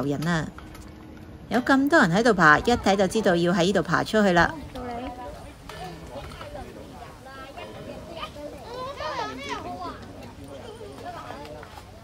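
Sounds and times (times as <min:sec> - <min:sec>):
children playing and talking: 0:01.9 - 0:12.0.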